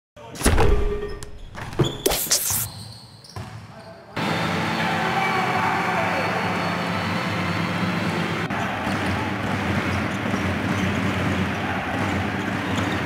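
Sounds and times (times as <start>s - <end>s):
whoosh and hit sound effect: 2.0s - 2.7s
arena crowd noise with voices: 4.0s - 13.0s.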